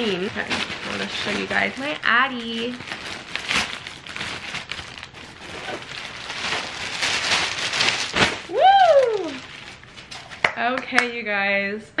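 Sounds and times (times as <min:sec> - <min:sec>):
plastic bags rustling and crinkling: 0:00.0 - 0:10.4.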